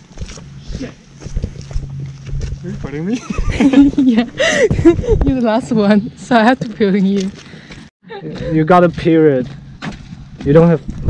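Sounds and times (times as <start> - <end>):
footsteps on dirt trail: 0.0 - 5.6, 6.4 - 11.0.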